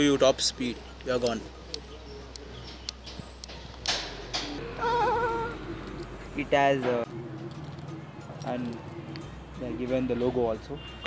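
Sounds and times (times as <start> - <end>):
animal bleating: 4.6 - 5.7.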